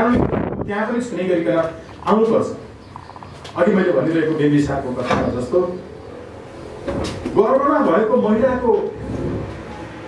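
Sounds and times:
man talking: 0:00.0 - 0:02.7, 0:03.5 - 0:05.9, 0:07.3 - 0:09.0.

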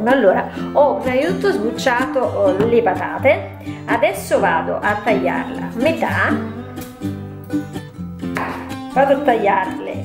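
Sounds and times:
plucked acoustic strings music: 0:01.2 - 0:10.0.

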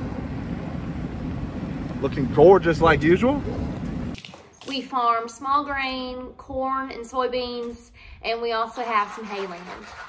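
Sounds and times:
engine low rumble: 0:00.0 - 0:04.2.

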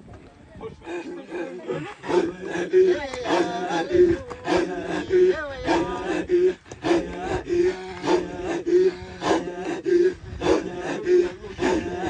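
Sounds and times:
men chanting with guttural grunts: 0:00.7 - 0:12.0.

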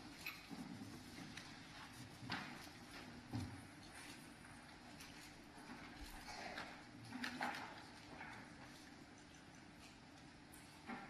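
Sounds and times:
faint hall hum: 0:00.0 - 0:11.0.

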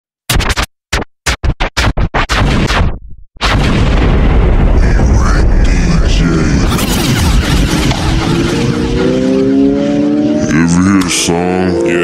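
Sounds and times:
record scratching: 0:00.3 - 0:03.0, 0:04.8 - 0:09.6.

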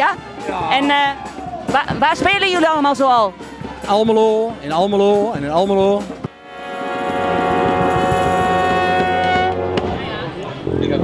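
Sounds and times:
brass band playing chords: 0:00.0 - 0:11.0.

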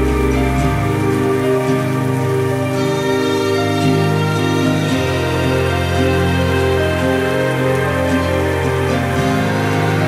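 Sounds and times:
slow mellow music: 0:00.0 - 0:10.0
steady rain: 0:00.0 - 0:10.0.

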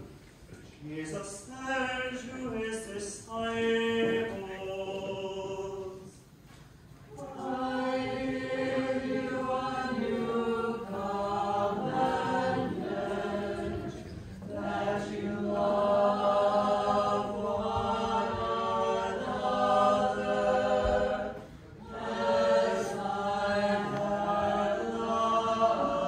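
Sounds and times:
choir singing a hymn: 0:00.8 - 0:06.3, 0:07.1 - 0:26.0.

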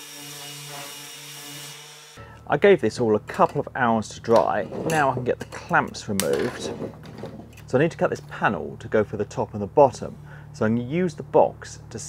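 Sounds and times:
orbital sander humming and hissing: 0:00.0 - 0:02.2.

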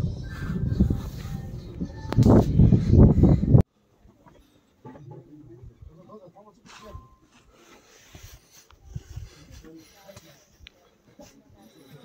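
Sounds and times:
faint indistinct voices: 0:04.0 - 0:12.0.

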